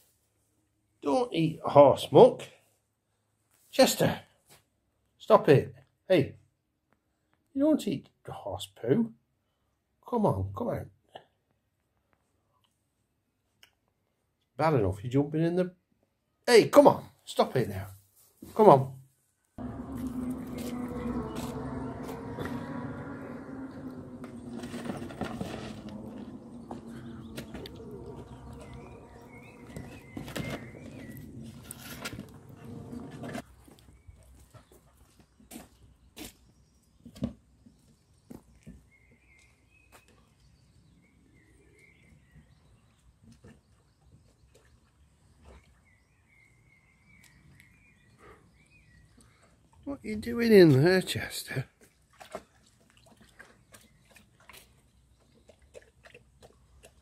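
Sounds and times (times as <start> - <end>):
steady drone: 19.6 - 33.4
small birds chirping: 19.6 - 51.2, 53.4 - 57.0.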